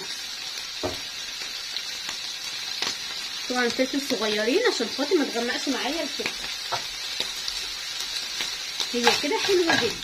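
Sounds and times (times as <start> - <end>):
livers sizzling in frying pan: 0.0 - 10.0.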